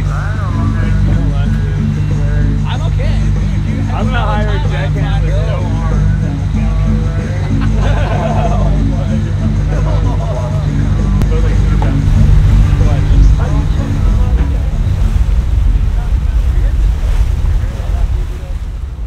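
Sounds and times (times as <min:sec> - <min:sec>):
boat engine rumble: 0:00.0 - 0:19.0
people talking and laughing: 0:00.0 - 0:19.0
sea water wash: 0:00.0 - 0:19.0
wind buffeting microphone: 0:11.0 - 0:19.0.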